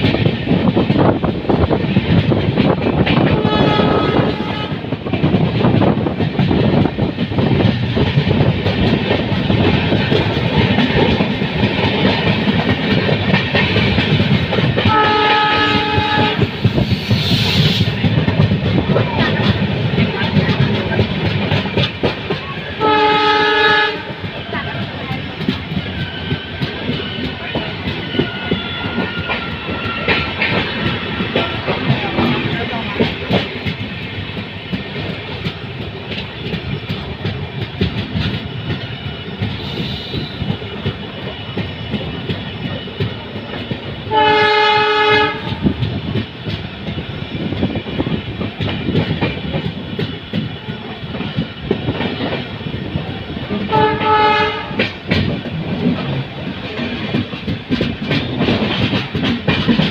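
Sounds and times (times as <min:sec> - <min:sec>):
train wheels clattering over rail joints: 0:00.0 - 0:59.9
locomotive horn: 0:03.3 - 0:04.9, 0:14.8 - 0:16.6, 0:22.8 - 0:24.3, 0:44.1 - 0:45.8, 0:53.7 - 0:54.9.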